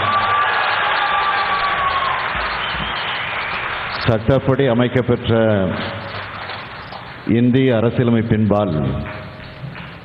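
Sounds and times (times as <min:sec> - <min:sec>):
crowd applauding and cheering: 0:00.0 - 0:05.0, 0:05.7 - 0:07.2.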